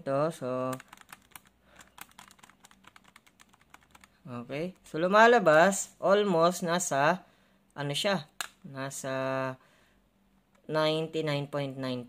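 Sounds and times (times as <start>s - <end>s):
calculator buttons clicking: 0.7s - 4.1s.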